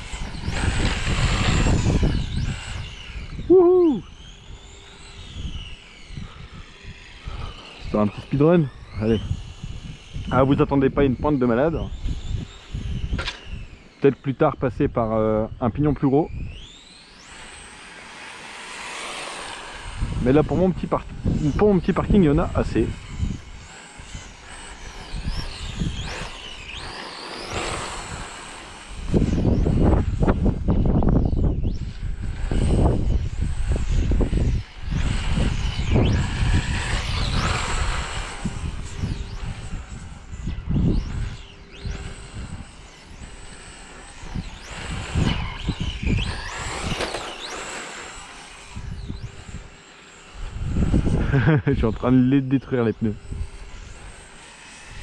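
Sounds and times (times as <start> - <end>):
electric motor whining: 0.0 - 55.0.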